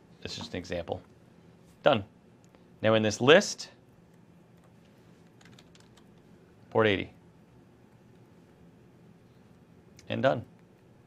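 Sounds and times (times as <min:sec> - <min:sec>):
computer keyboard clicks: 0:05.3 - 0:06.2.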